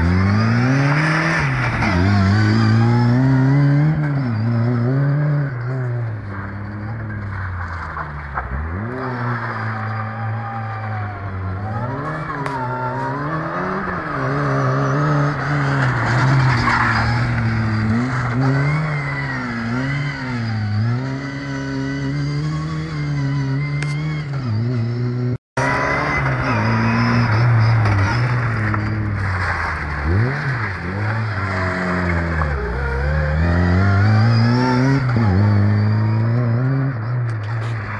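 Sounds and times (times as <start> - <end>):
car engine revving: 0.0 - 37.9.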